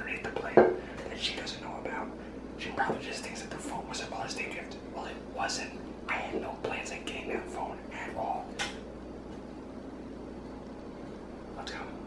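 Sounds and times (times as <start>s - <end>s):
soft whispering: 0.0s - 8.6s, 11.5s - 12.0s
knocking on wooden cutting board: 0.6s - 0.8s.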